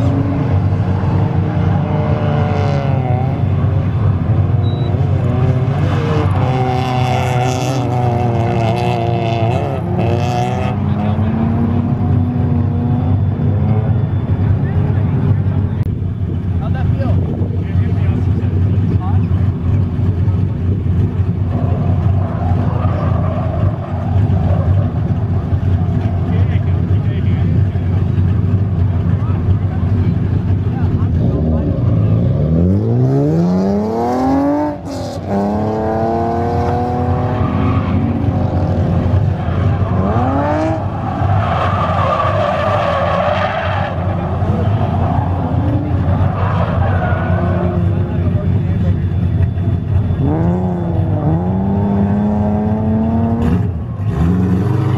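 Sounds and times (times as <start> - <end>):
car engines revving: 0.0 - 54.9.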